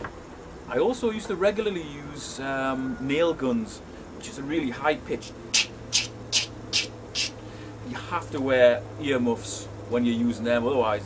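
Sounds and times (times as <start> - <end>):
man imitating nail gun: 5.5 - 7.4.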